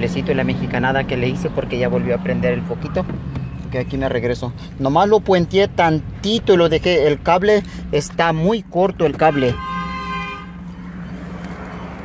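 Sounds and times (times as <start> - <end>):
car engine drone: 0.0 - 12.0
road noise: 0.0 - 12.0
horn-like tone: 9.2 - 10.7.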